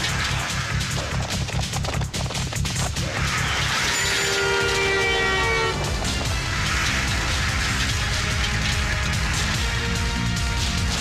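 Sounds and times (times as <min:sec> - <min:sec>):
film music: 0:00.0 - 0:11.0
car horn two-note tone: 0:03.9 - 0:05.9.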